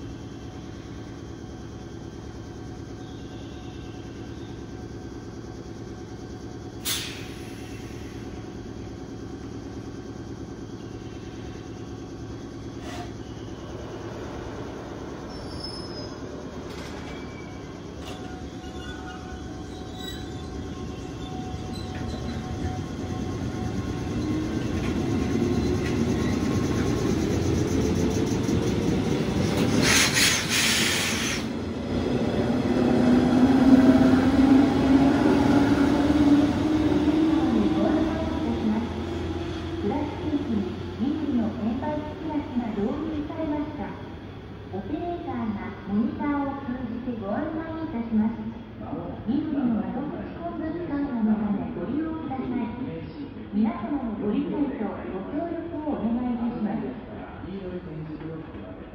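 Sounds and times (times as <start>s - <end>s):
wheel noise on rails: 0.0s - 52.2s
electric train hum: 0.0s - 58.9s
high-pitched wheel squeal: 15.3s - 16.2s, 17.0s - 22.5s.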